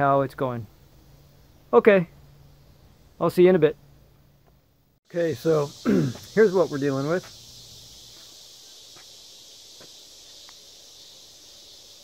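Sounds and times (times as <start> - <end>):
high-pitched insect chorus: 0.0 - 4.3, 5.0 - 12.0
faint ticks: 10.2 - 10.7.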